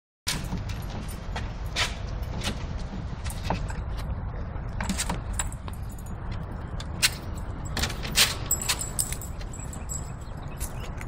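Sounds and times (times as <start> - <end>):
wind rumble on microphone: 0.3 - 11.0
dog tags jangling: 7.2 - 11.0.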